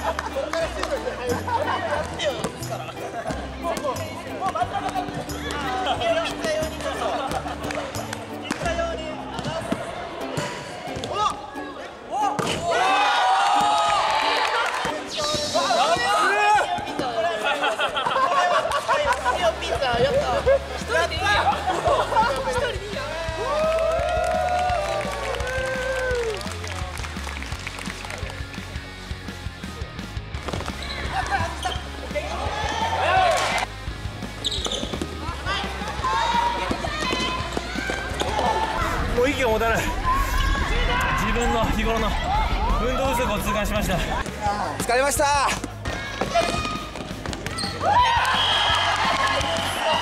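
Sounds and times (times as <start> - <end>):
background music: 0.0 - 50.0
young men shouting and cheering: 12.1 - 26.4, 31.1 - 33.7, 35.5 - 46.8, 47.7 - 50.0
shoe squeaks: 30.7 - 32.0, 34.4 - 35.2, 47.5 - 47.8
players shouting: 30.7 - 33.7, 34.4 - 50.0.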